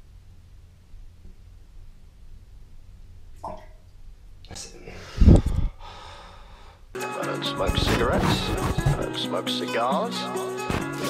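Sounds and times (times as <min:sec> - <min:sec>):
person snorting: 0:07.6 - 0:09.1.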